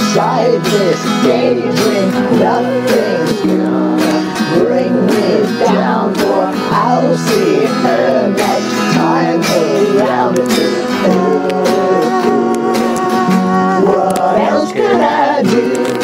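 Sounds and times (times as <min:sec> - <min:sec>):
bass notes: 0:00.0 - 0:16.0
lead guitar with bent notes: 0:00.0 - 0:16.0
strummed acoustic guitar: 0:00.0 - 0:16.0.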